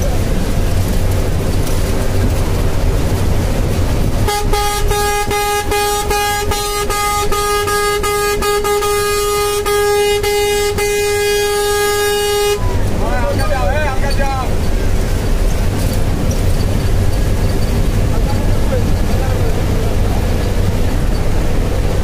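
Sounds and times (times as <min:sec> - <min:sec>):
vehicle road and wind rumble: 0:00.0 - 0:22.0
car horn held note: 0:04.3 - 0:12.6.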